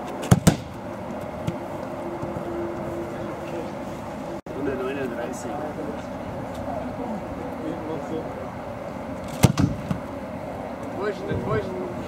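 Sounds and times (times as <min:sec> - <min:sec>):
ball hitting inflatable goal: 0:00.2 - 0:00.8, 0:09.4 - 0:10.0
boot kicking football: 0:00.2 - 0:00.8.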